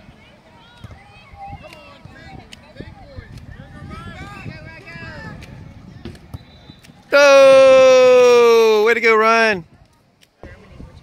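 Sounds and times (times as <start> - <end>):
spectator shouting go: 7.1 - 9.6.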